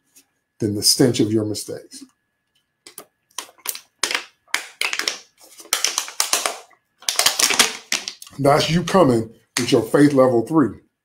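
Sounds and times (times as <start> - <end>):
plastic bottle crinkling: 2.9 - 8.9.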